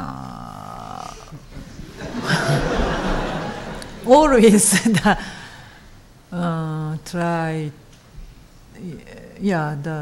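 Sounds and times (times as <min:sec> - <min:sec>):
woman humming hesitantly: 0:00.0 - 0:01.4.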